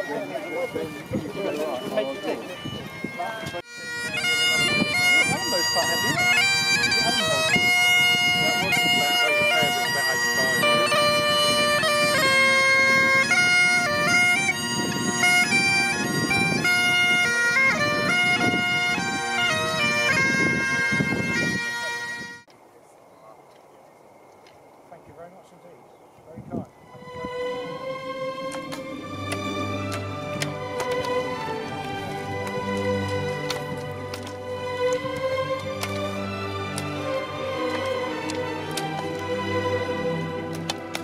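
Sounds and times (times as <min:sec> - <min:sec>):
bagpipes playing a tune: 0:00.0 - 0:22.5, 0:26.8 - 0:41.0.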